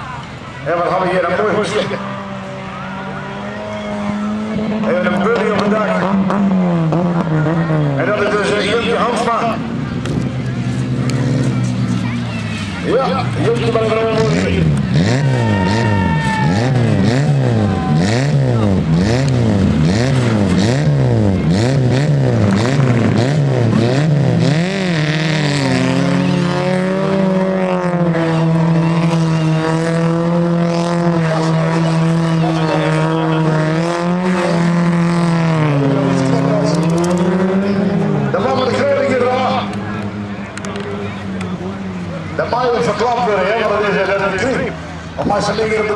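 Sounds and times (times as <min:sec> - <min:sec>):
car engine revving: 0:00.0 - 0:45.9.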